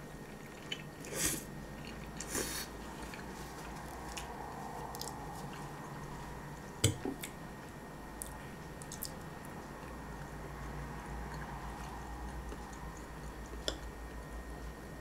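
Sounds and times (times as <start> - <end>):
person chewing spaghetti: 0.2 - 6.4, 8.2 - 14.3.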